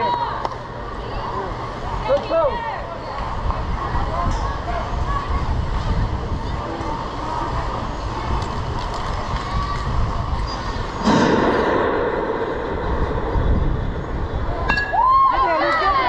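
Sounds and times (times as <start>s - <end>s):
baseball game background noise: 0.0s - 16.0s
low outdoor rumble: 0.0s - 16.0s.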